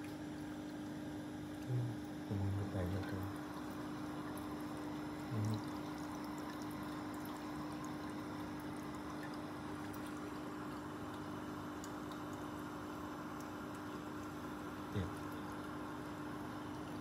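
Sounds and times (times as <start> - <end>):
aquarium water circulating: 0.0 - 17.0
constant low hum: 0.0 - 17.0.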